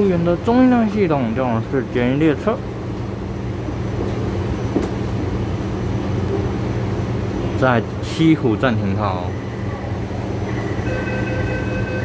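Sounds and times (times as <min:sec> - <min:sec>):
recorded announcement: 0:00.0 - 0:02.6, 0:07.4 - 0:09.9
metro train car equipment hum: 0:00.0 - 0:12.0.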